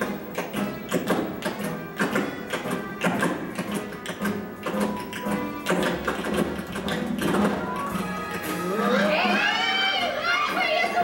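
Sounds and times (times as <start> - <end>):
tap dancing taps: 0.0 - 8.0
instrumental show music: 0.0 - 11.0.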